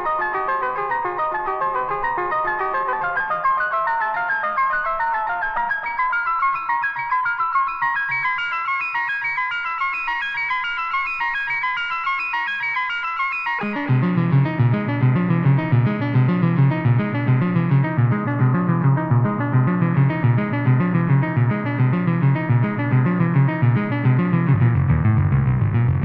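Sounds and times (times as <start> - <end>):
low synth bass line: 13.6 - 26.0.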